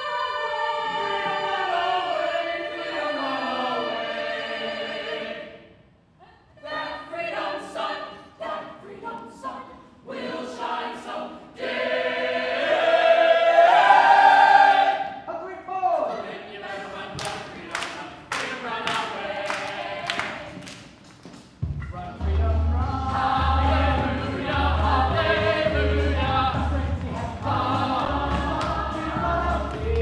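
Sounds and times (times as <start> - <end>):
chorus singing: 0.0 - 5.8, 6.6 - 15.2, 16.1 - 20.8, 22.1 - 30.0.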